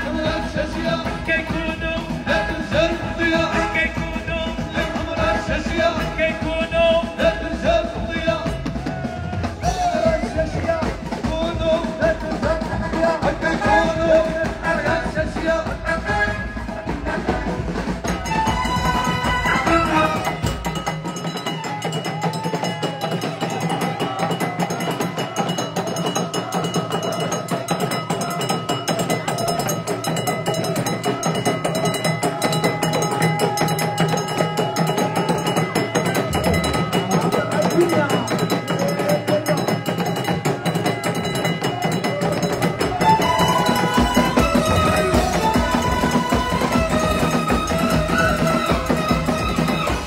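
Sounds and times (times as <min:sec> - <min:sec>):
hand drums beaten fast: 0:00.0 - 0:50.0
voices: 0:00.0 - 0:50.0.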